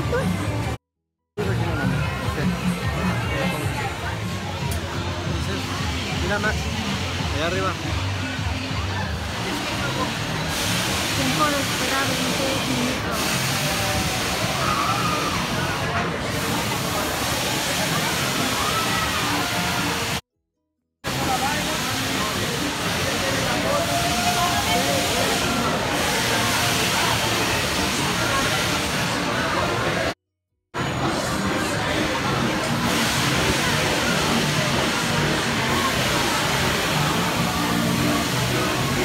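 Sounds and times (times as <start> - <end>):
crowd voices: 0.0 - 0.8, 1.4 - 20.2, 21.1 - 30.2, 30.8 - 39.0
music: 0.0 - 0.8, 1.4 - 20.2, 21.1 - 30.1, 30.8 - 39.0.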